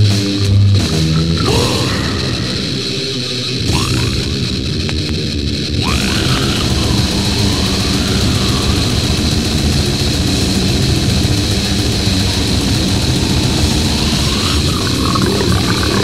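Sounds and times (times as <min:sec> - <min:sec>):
distorted guitars and bass: 0:00.0 - 0:16.0.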